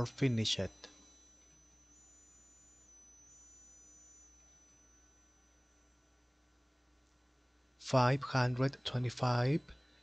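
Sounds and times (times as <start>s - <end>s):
faint high-pitched tone: 0.0s - 10.0s.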